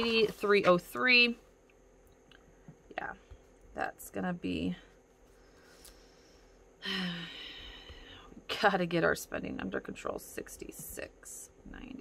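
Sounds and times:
woman sighing: 6.8s - 8.3s.

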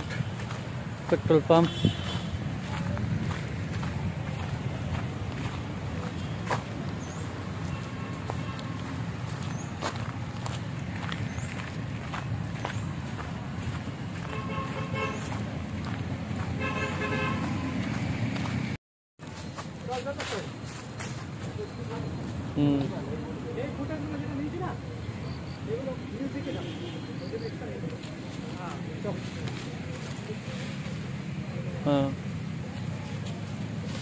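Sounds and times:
road traffic rumble: 0.0s - 34.0s
vehicle horn toots: 1.6s - 2.4s, 14.2s - 15.4s, 16.6s - 17.8s.

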